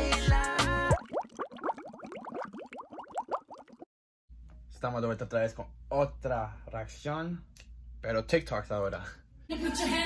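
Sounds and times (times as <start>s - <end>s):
short rising bubbling bloops: 0.9s - 3.9s.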